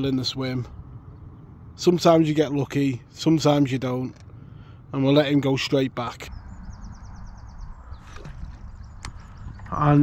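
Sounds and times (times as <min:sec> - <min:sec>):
wind rumble on microphone: 0:06.2 - 0:10.0.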